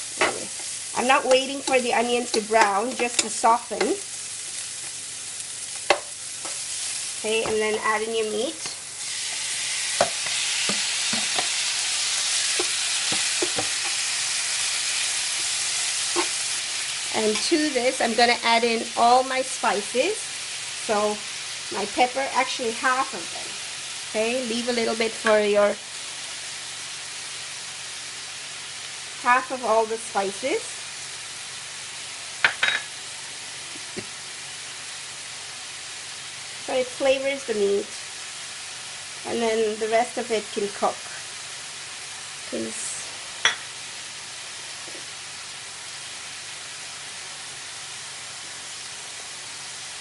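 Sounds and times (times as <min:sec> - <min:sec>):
meat sizzling in frying pan: 0:00.0 - 0:50.0
spatula knocking and scraping pan: 0:01.6 - 0:04.0, 0:05.9 - 0:06.6, 0:07.3 - 0:07.8, 0:10.0 - 0:11.6, 0:12.5 - 0:14.0.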